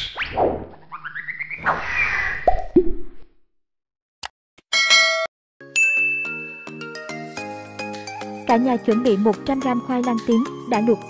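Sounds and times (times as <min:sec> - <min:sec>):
cartoon plops: 0:02.4 - 0:03.2
music: 0:05.6 - 0:11.0.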